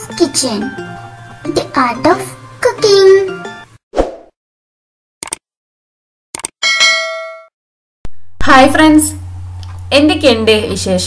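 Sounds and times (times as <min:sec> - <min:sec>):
quick clicks: 0:05.2 - 0:05.4, 0:06.4 - 0:06.6
bell-like ding: 0:06.6 - 0:07.5.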